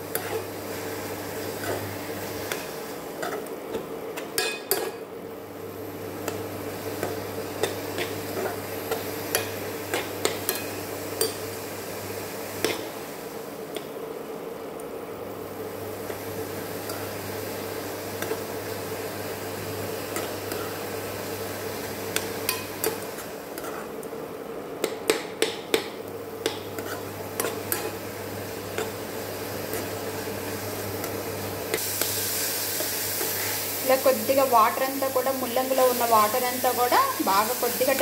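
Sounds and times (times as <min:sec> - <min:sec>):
hiss of frying: 0:00.0 - 0:38.0
spoon scraping a pan: 0:00.1 - 0:00.5, 0:22.2 - 0:23.9, 0:26.5 - 0:28.0.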